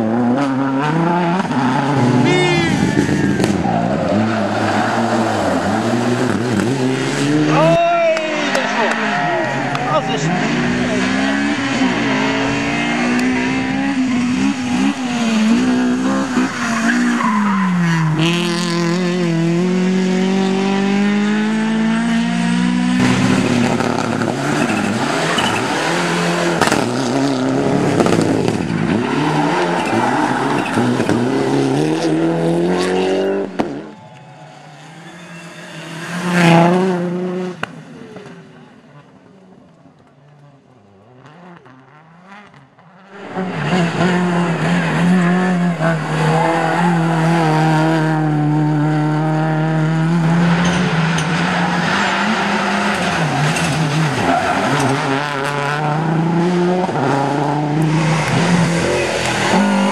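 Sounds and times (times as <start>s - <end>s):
rally car engines revving: 0.0s - 59.9s
car passing: 0.8s - 39.4s, 40.9s - 59.9s.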